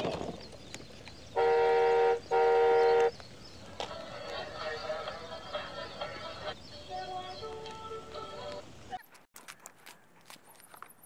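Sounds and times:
electronic toy horn honks: 1.4 - 3.1.

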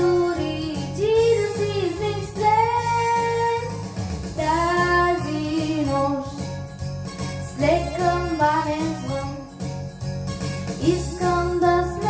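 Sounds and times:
pop backing track: 0.0 - 12.0.

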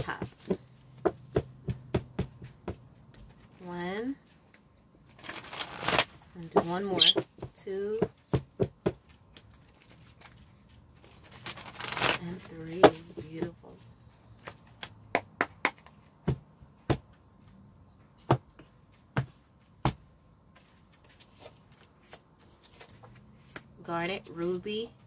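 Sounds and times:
cards shuffling: 5.1 - 7.2, 9.0 - 13.1.

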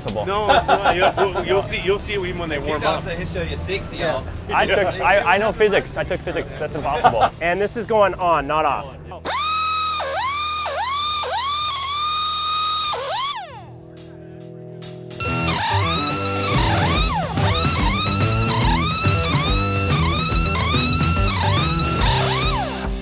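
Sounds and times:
impact wrench whining: 9.2 - 13.8, 15.2 - 23.0
background music with beat: 13.5 - 23.0.

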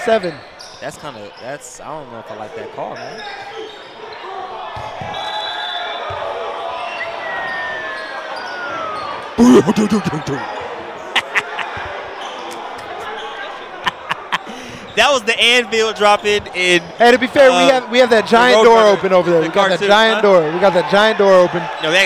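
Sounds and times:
crowd chatter in large hall: 0.0 - 22.0.

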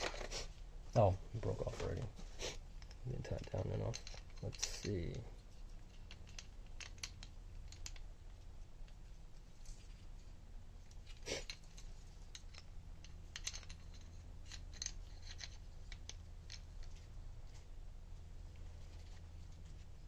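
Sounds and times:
faint steady hum: 0.0 - 20.0
plastic parts clicking and rattling: 2.8 - 8.4, 10.9 - 17.1.

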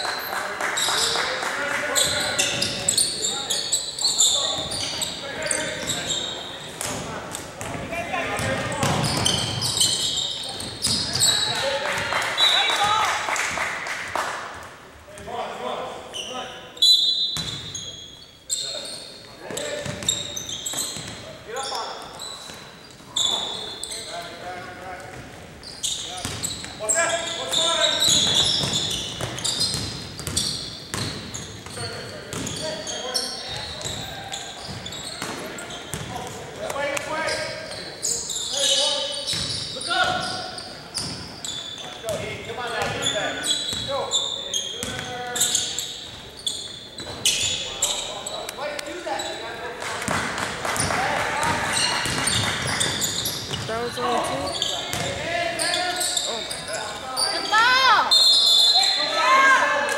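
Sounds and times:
people calling out: 57.2 - 59.9.

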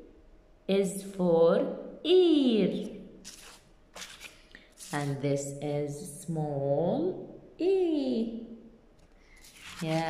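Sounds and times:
paper flashcards rustling: 3.2 - 5.2, 9.3 - 10.0.

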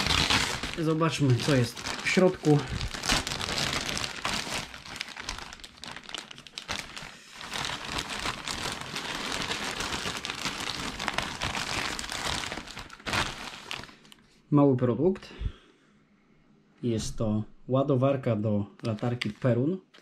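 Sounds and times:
plastic bag crinkling: 0.0 - 14.2.

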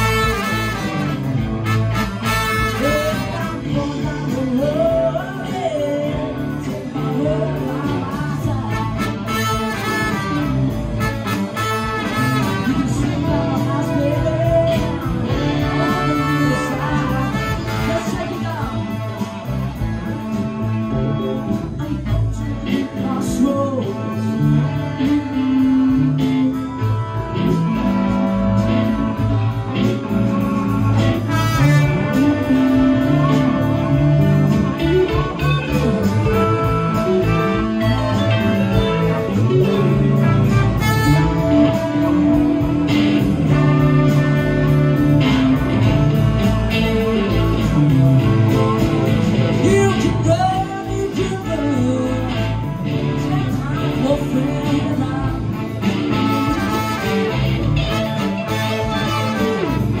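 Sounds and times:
bass guitar: 0.0 - 60.0
blues band playing: 0.0 - 60.0
drums: 0.0 - 60.0
electric guitars: 0.0 - 60.0
saxophone and trumpet: 0.0 - 60.0.

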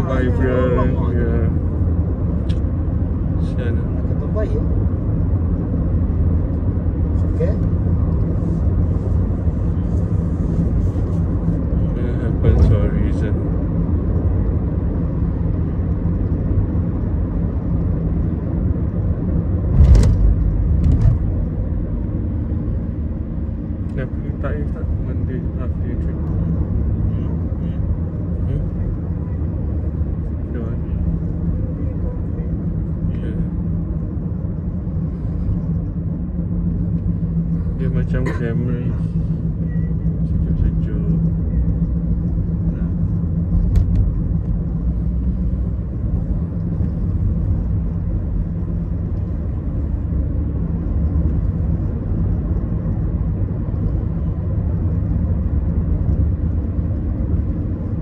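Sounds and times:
car cabin road rumble: 0.0 - 58.0.

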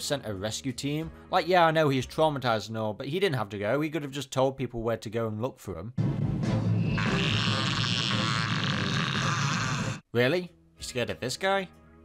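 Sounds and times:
monster growling roar: 6.8 - 10.0.

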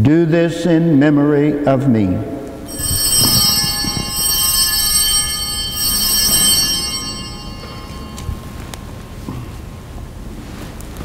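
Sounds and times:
bright ringing bells: 2.7 - 10.4.

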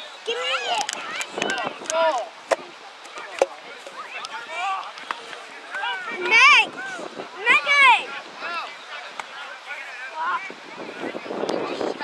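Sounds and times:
faint outdoor background noise: 0.0 - 12.0
loud shout: 5.8 - 8.7.

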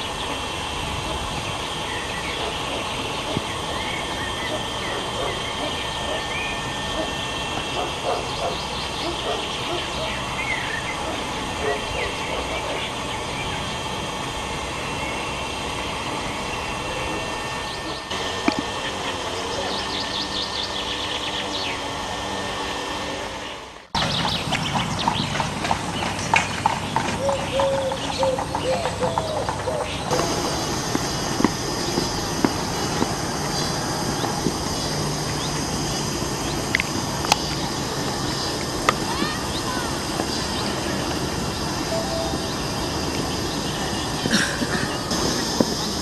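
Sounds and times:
birds chirping: 0.0 - 46.0
footsteps walking uphill: 24.0 - 46.0.

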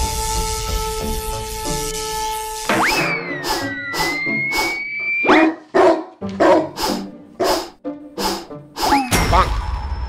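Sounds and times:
gliding whistle tones: 2.6 - 5.5
slide-whistle boing: 2.7 - 5.5
dog barking: 5.3 - 7.7.

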